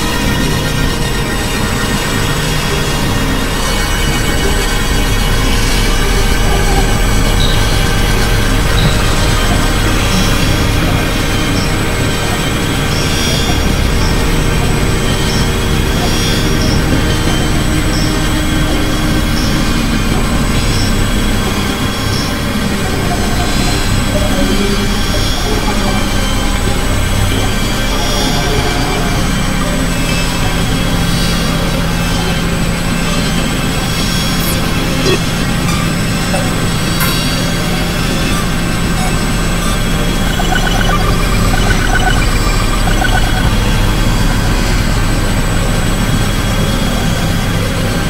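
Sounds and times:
experimental electronic music: 34.4s - 35.4s, 38.8s - 46.1s.

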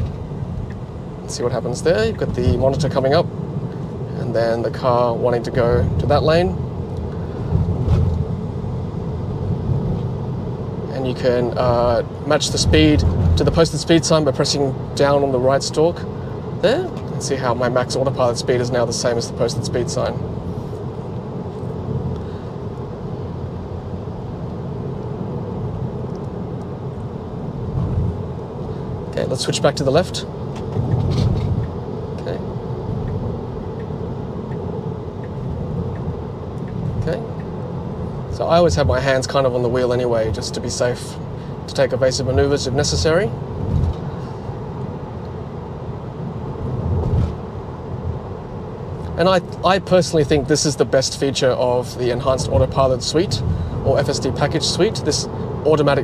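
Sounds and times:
tyre and road rumble in car: 0.0s - 56.0s.

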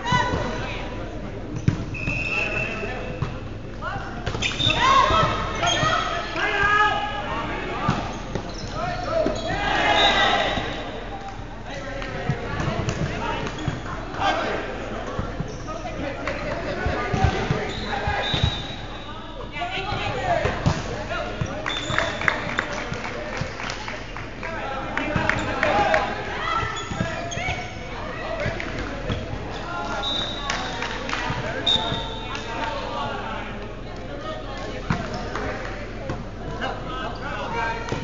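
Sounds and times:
players shouting: 8.9s - 11.0s.

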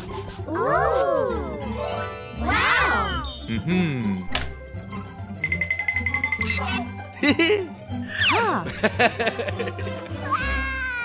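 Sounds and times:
cartoon background music: 0.0s - 11.0s
wordless vocal sounds: 3.5s - 4.3s.

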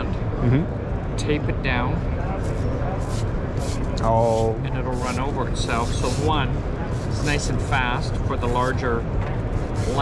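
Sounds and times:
voices in hall: 0.0s - 10.0s.

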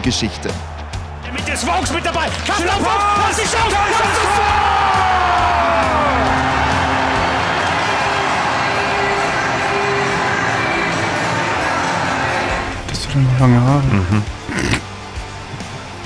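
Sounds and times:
arena crowd cheering: 0.0s - 12.9s
commentator shouting: 1.4s - 6.0s.

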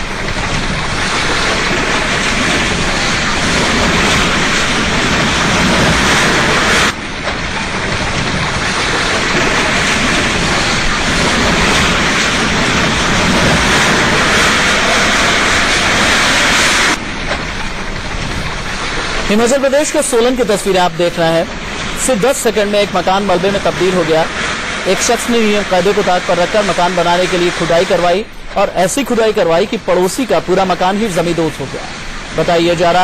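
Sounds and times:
building collapsing: 0.0s - 33.0s.

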